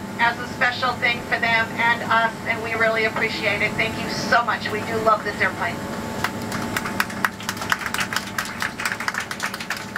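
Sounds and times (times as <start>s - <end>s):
airliner taxiing hum: 0.0s - 9.9s
passengers clapping: 6.2s - 9.9s.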